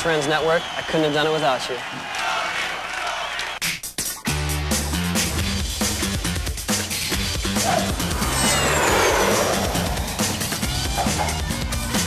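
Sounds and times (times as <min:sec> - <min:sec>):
whoosh with falling pitch: 0:07.7 - 0:11.2.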